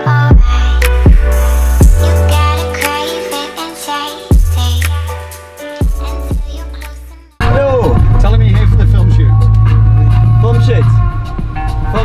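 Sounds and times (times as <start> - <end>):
background music with heavy bass: 0.0 - 12.0.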